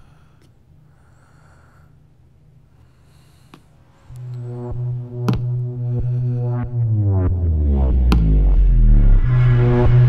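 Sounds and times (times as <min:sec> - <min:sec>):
low drone: 0:04.0 - 0:10.0
pulsing synthesizer tone: 0:04.4 - 0:10.0.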